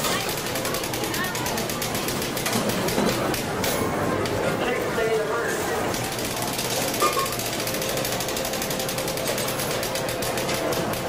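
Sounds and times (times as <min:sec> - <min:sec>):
rapid mechanical ticking: 0:00.0 - 0:04.4, 0:05.8 - 0:11.0.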